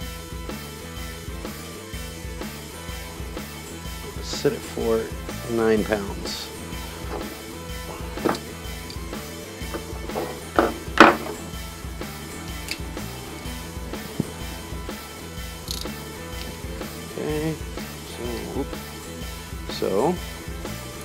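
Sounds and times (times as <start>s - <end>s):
background music with beat: 0.0s - 21.0s
torque wrench clicks: 12.6s - 12.8s, 15.6s - 16.5s.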